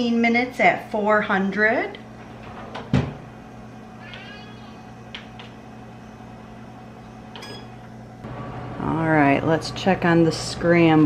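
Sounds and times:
appliance humming: 0.0 - 11.0
oven door clunk: 2.4 - 3.2
short high beep: 7.4 - 7.7.

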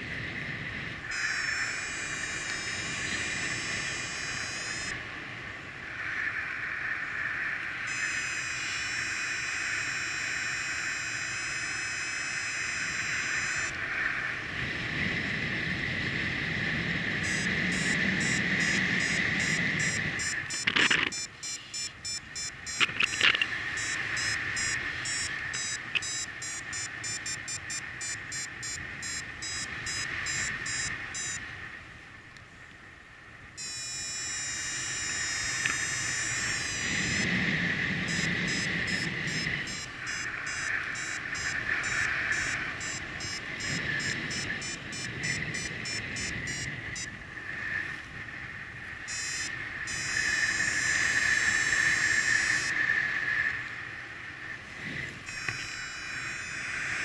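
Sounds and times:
wind rush: 0.0 - 57.0
variometer beeping: 1.1 - 5.0, 7.8 - 13.8, 17.2 - 31.4, 33.6 - 47.2, 49.0 - 52.7, 55.2 - 57.0.

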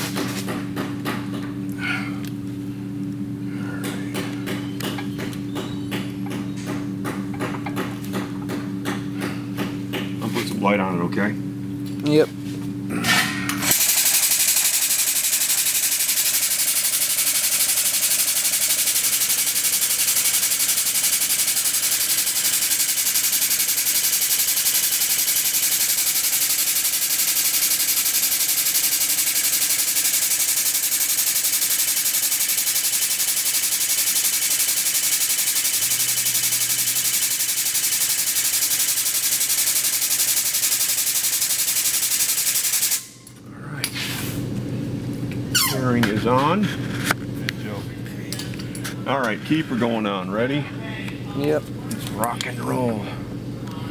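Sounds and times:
press pump mechanical chatter: 13.7 - 43.0.

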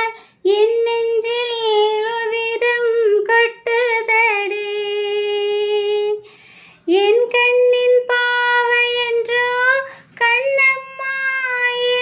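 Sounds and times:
woman singing unaccompanied: 0.0 - 12.0
woman breathing in: 0.2 - 0.4, 6.2 - 6.9.

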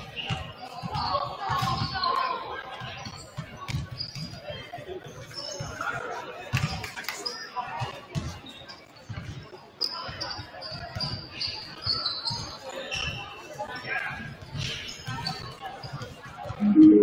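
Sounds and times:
voices in background: 0.0 - 17.0.

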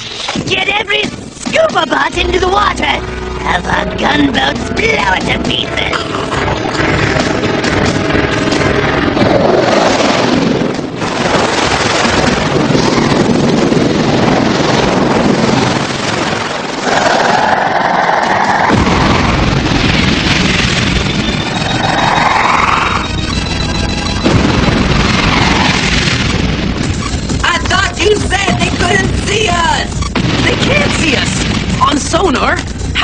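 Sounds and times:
heavy rumbling booms: 0.4 - 16.9, 18.6 - 33.0
dramatic underscore music: 1.1 - 11.0, 20.6 - 33.0
explosions: 4.0 - 33.0
weapon fire: 6.2 - 23.4, 24.0 - 32.5
rising swooshes: 21.2 - 26.0.

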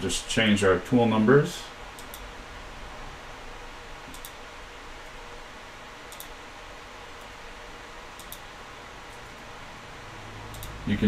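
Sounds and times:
room tone hiss: 0.0 - 11.0
faint computer input clicks: 4.1 - 4.4, 6.1 - 6.4, 8.2 - 8.5.

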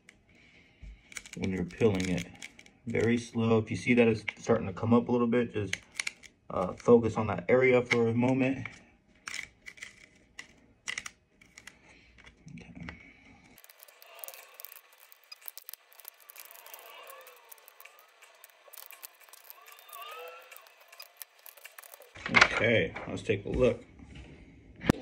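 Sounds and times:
small clicks: 13.6 - 22.2
transfer sheet peeling crackle: 13.6 - 22.2.

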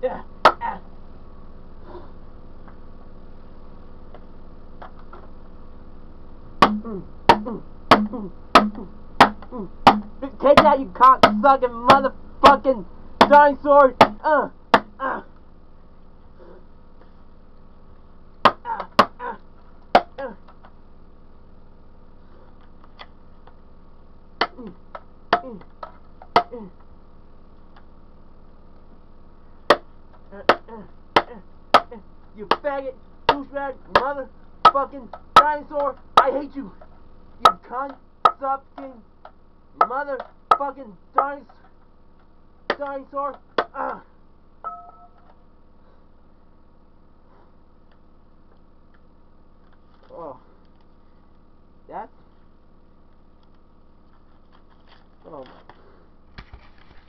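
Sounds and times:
person grunting: 0.0 - 0.9, 6.8 - 10.4, 14.2 - 15.4, 18.6 - 19.5, 20.1 - 20.4, 24.5 - 24.8, 25.4 - 25.7, 26.4 - 26.8, 30.3 - 31.5, 43.7 - 44.1
low steady hum: 0.0 - 57.0
short falling tone: 44.6 - 45.3.

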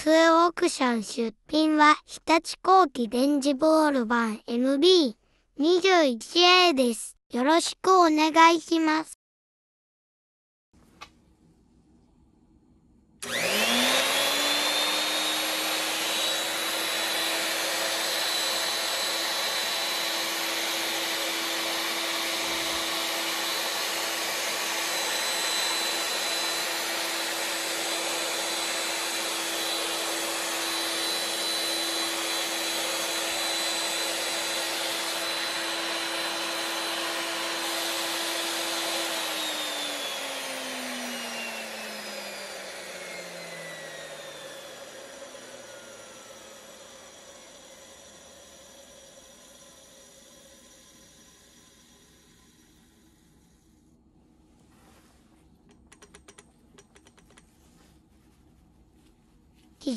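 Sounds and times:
drill press motor whining: 13.2 - 53.9.

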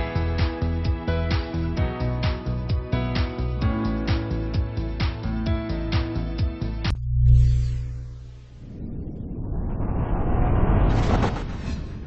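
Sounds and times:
rumbling whoosh riser: 7.2 - 12.0.

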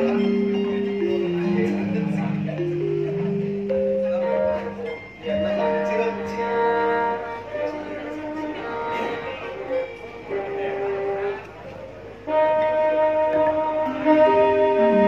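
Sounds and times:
metallophone struck with mallets: 0.0 - 7.0
long held melodic notes: 0.0 - 15.0.

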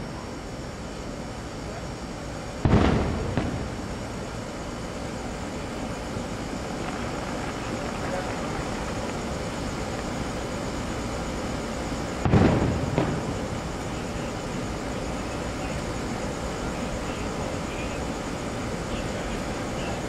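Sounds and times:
distant fireworks booming: 2.6 - 4.3, 6.1 - 10.1, 12.2 - 14.8.

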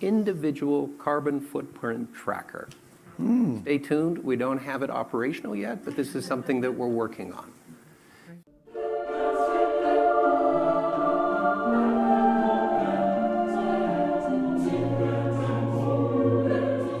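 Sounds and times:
choir singing slow chords: 8.6 - 17.0.

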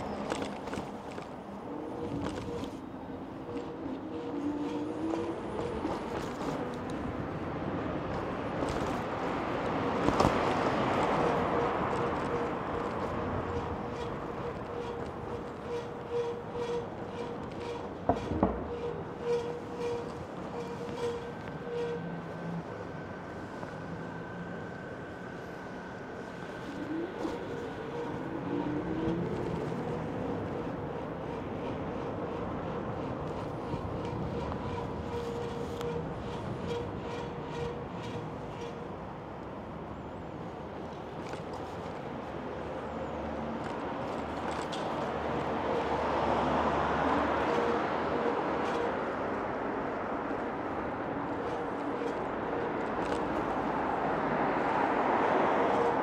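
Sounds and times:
electric bike whine: 0.0 - 38.9
street noise: 0.0 - 56.0.

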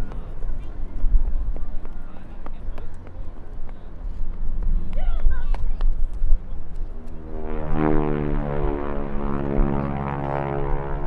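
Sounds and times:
propeller plane engine drone: 0.0 - 11.0.

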